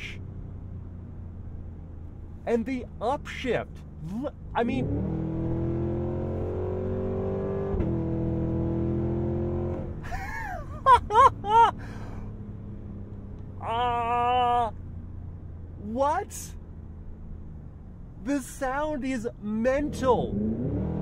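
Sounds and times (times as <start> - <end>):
car engine at full throttle: 0.0 - 18.3, 19.7 - 21.0
man whooping: 10.1 - 12.0, 13.6 - 14.7.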